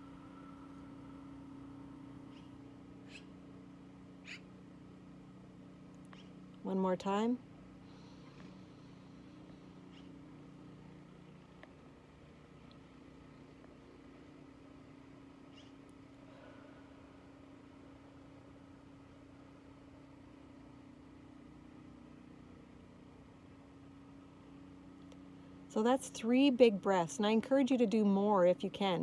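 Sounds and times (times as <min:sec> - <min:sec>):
faint low hum: 0:00.0 - 0:29.0.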